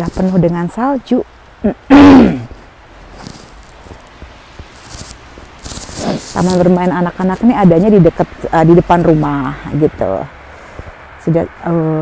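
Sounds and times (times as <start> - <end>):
footsteps crunching in snow: 0.0 - 0.8, 2.2 - 9.8
woman speaking: 0.0 - 1.9, 6.0 - 10.3, 11.2 - 12.0.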